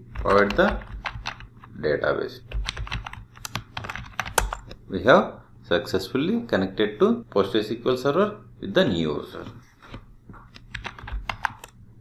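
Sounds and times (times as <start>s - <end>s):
computer keyboard key clicks: 0.1s - 1.5s, 2.5s - 4.8s, 10.5s - 11.8s.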